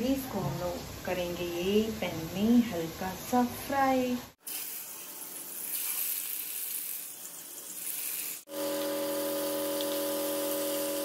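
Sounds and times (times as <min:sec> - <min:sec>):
chicken sizzling in hot oil: 0:04.4 - 0:11.0.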